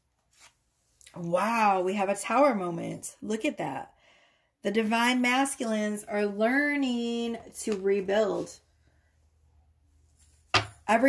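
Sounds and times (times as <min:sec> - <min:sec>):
woman speaking: 0:01.1 - 0:03.9, 0:04.6 - 0:08.6.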